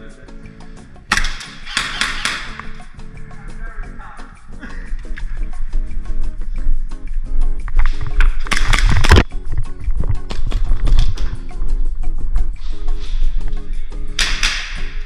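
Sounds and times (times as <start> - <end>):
music with steady beat: 0.0 - 15.0.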